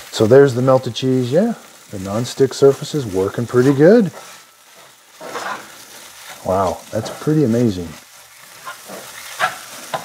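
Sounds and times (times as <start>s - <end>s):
faint sizzle: 0.0s - 10.0s
spatula scraping frying pan: 3.2s - 7.3s, 8.0s - 10.0s.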